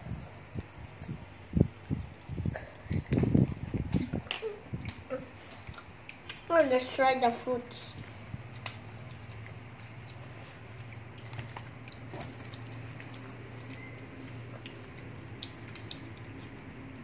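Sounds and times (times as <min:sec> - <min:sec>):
gummy candies handled and chewed: 0:00.0 - 0:17.0
steady low hum: 0:00.0 - 0:17.0.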